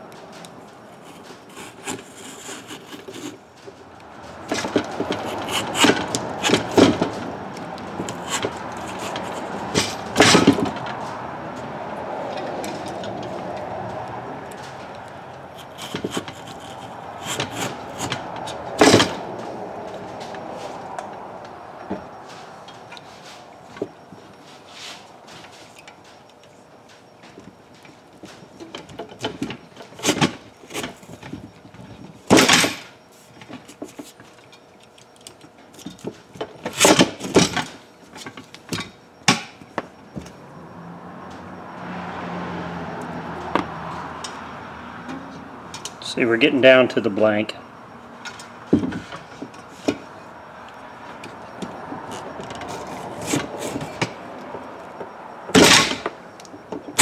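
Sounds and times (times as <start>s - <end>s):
knife slicing and scraping: 1.0s - 3.4s, 5.1s - 6.8s, 8.0s - 9.8s, 15.6s - 18.2s.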